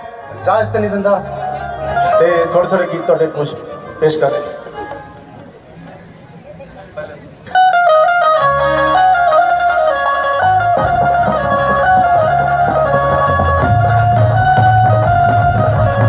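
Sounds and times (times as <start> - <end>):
bass: 0.0 - 2.9, 7.2 - 16.0
bright melody line: 7.5 - 16.0
live band music: 7.5 - 16.0
heavy beat: 10.4 - 16.0.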